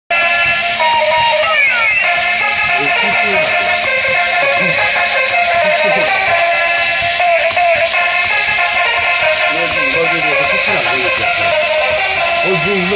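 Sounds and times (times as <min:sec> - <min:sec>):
electronic toy melody: 0:00.1 - 0:12.9.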